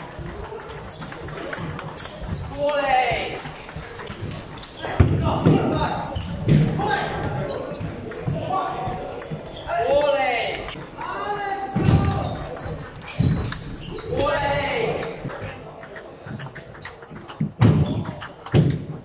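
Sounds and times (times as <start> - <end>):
voices shouting and talking: 4.2 - 16.6.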